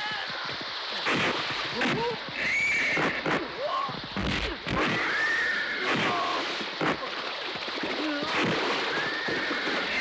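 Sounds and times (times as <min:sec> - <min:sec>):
horses whinnying: 0:08.8 - 0:10.0.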